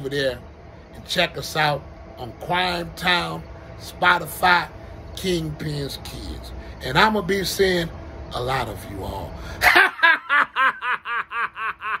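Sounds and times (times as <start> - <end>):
man laughing: 9.6 - 12.0.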